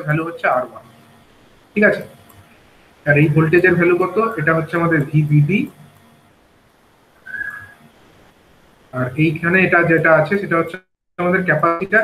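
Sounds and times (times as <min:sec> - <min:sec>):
high whistle-like tone: 0:07.2 - 0:07.8.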